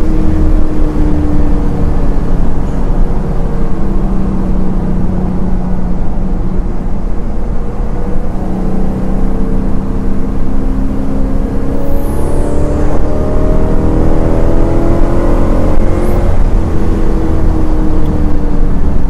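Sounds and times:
car engine at highway speed: 0:00.0 - 0:19.0.

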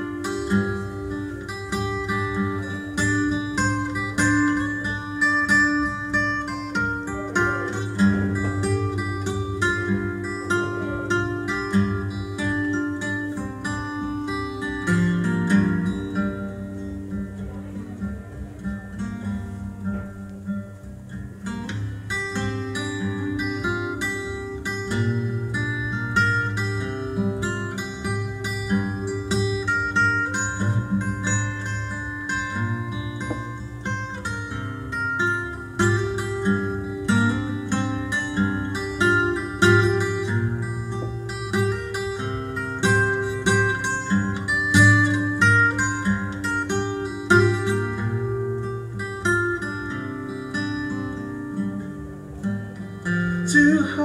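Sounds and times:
fingerpicked acoustic guitar: 0:00.0 - 0:54.0.

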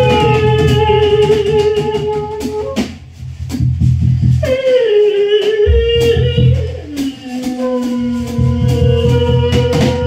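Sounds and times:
woman singing operatic note: 0:04.8 - 0:10.0
drum hits: 0:05.7 - 0:10.0.

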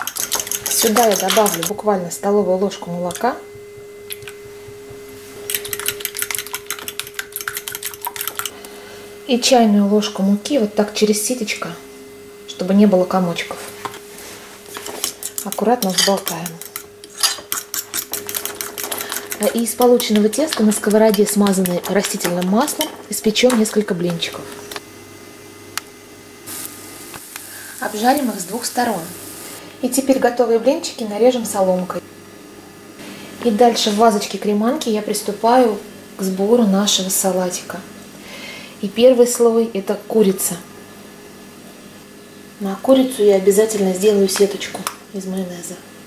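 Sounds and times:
fork whisking in bowl: 0:00.0 - 0:01.8, 0:02.9 - 0:08.6, 0:14.7 - 0:24.8
batter sizzling in a frying pan: 0:26.4 - 0:29.6.

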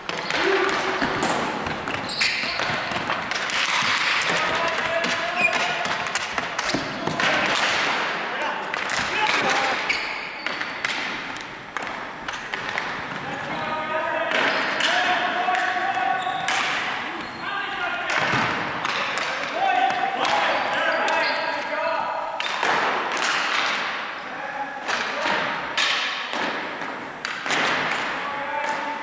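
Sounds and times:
hockey sticks and ball clacking: 0:00.0 - 0:29.0
players calling out: 0:00.1 - 0:22.6.

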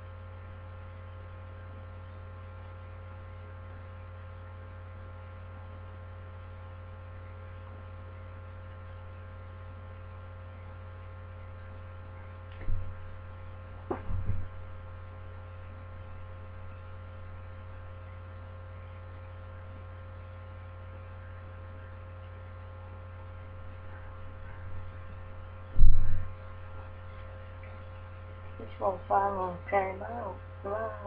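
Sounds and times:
electrical mains hum: 0:00.0 - 0:31.0
short low thump: 0:13.8 - 0:14.6, 0:25.8 - 0:26.3.

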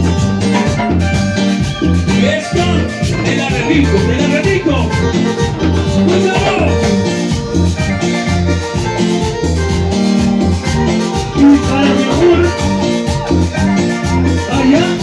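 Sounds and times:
live dance band playing: 0:00.0 - 0:15.0.

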